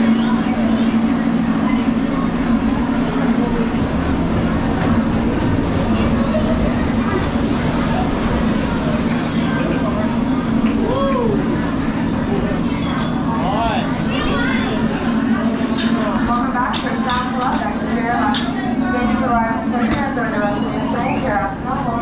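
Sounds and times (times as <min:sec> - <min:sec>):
machine hum: 0:00.0 - 0:16.7
faint voices: 0:00.0 - 0:22.0
low rumble: 0:01.4 - 0:12.6.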